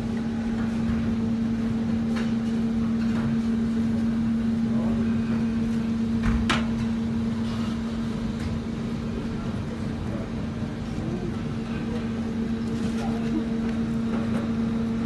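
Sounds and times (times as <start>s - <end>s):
electrical hum of machinery: 0.0s - 15.0s.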